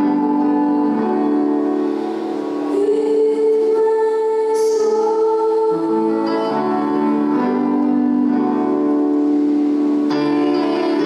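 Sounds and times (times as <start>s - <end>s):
electronic keyboard chord: 0.0s - 11.0s.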